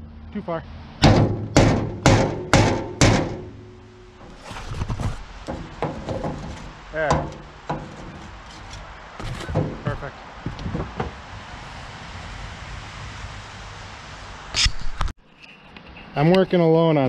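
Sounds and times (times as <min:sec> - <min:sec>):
outdoor background noise: 0:00.0 - 0:17.0
wooden stake knocking on metal: 0:01.0 - 0:11.2.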